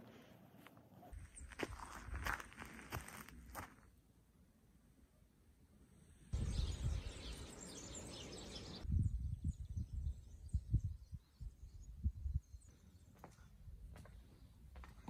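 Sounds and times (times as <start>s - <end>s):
small birds chirping: 6.3s - 15.0s
wind buffeting microphone: 6.4s - 12.7s.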